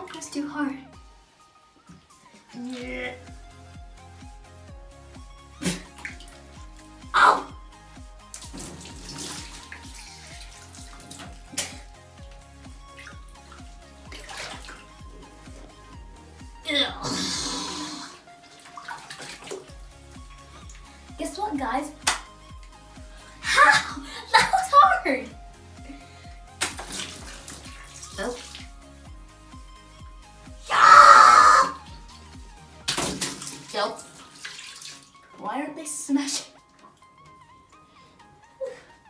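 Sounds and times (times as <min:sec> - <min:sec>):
background music with low beat: 0:00.0 - 0:30.8, 0:31.7 - 0:35.5
water balloons popping: 0:05.6 - 0:06.4, 0:08.3 - 0:12.0, 0:26.5 - 0:28.0, 0:32.8 - 0:33.7
water splashing: 0:05.6 - 0:07.5, 0:08.2 - 0:15.9, 0:17.4 - 0:22.4, 0:26.5 - 0:28.9, 0:32.0 - 0:35.4.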